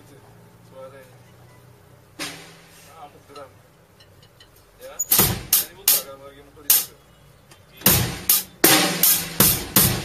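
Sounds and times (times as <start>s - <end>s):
drum kit hits: 2.2s - 2.8s, 5.1s - 6.1s, 6.7s - 6.9s, 7.8s - 10.0s
bass drum thump: 5.1s - 5.8s, 7.9s - 10.0s.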